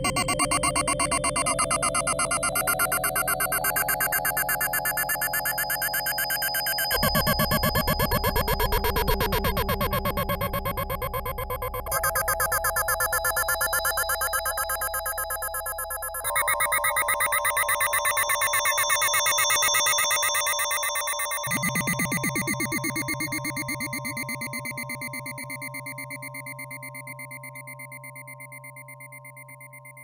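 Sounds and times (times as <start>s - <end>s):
pulsing synthesizer chords: 20.4s - 28.5s.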